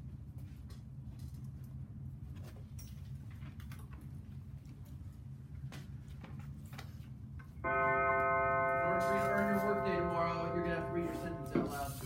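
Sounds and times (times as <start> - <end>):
low room hum: 0.0 - 12.0
electronic alarm tone: 7.7 - 12.0.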